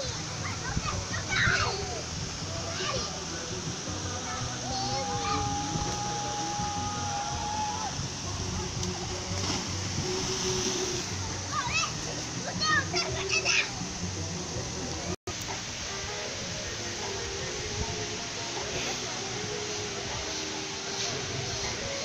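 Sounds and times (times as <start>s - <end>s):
distant children's voices: 0.0s - 7.7s
small waterfall rushing into pool: 0.0s - 22.0s
child's long call: 4.5s - 7.9s.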